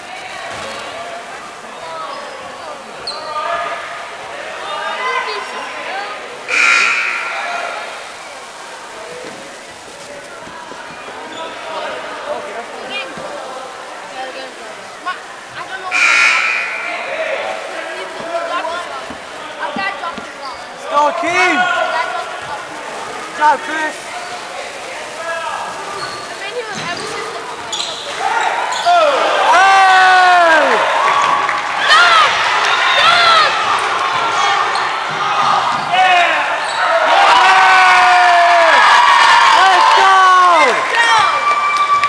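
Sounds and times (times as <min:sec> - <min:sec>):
crowd noise bursts: 0:00.0 - 0:42.0
spectators chattering: 0:00.0 - 0:42.0.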